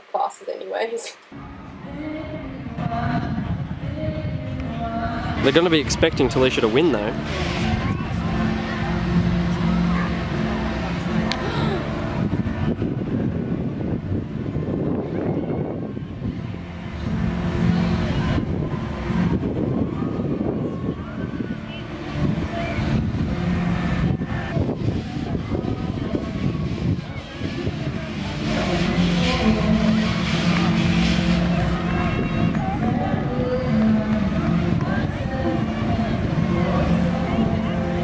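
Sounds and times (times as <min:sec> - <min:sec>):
indistinct voices: 0:00.0 - 0:38.0
steady low rumble: 0:01.3 - 0:38.0.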